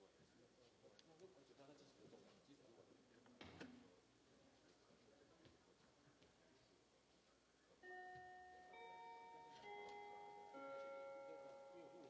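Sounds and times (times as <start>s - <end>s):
bell-like chime melody: 7.8s - 12.0s.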